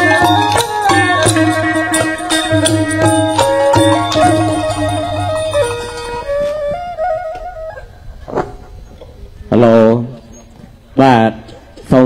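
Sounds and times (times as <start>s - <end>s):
traditional ensemble melody: 0.0s - 8.9s.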